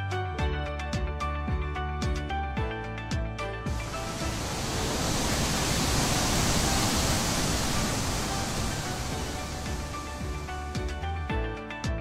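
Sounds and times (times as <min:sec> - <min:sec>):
background music: 0:00.0 - 0:12.0
long hissing sound effect: 0:03.7 - 0:11.1.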